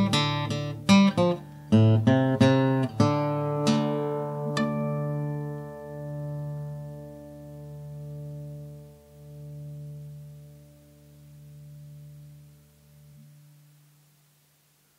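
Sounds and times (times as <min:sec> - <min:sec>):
acoustic guitar chord ringing: 0:00.0 - 0:14.4.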